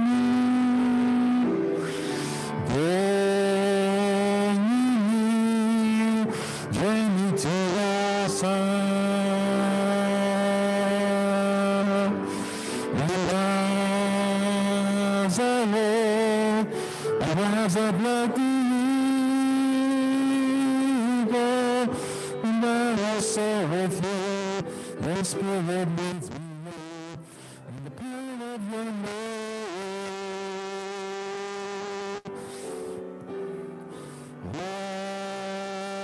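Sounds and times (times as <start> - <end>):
man singing a held note: 0.0 - 32.4, 34.0 - 36.0
piano accompaniment: 0.0 - 36.0.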